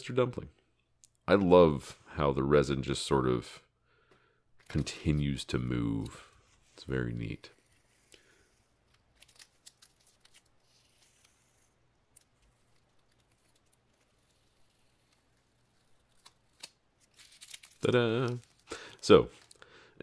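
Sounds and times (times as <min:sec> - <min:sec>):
tape peeling crackles: 0:07.5 - 0:19.6.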